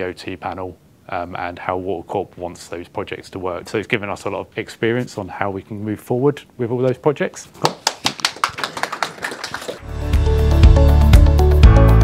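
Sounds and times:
people clapping: 0:07.6 - 0:09.9.

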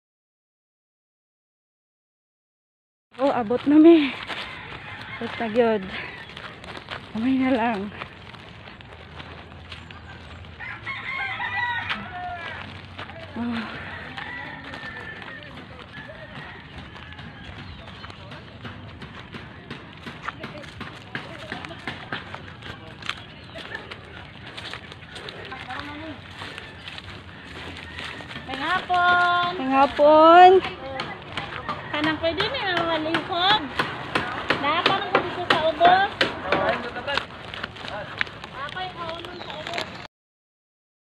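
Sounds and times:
footsteps on dirt path: 0:03.1 - 0:40.1
people talking in background: 0:11.9 - 0:40.1.

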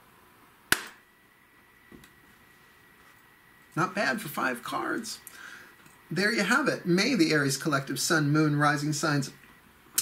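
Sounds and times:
faint high hum: 0:00.0 - 0:10.0
sharp knock or slap: 0:00.7 - 0:01.0.

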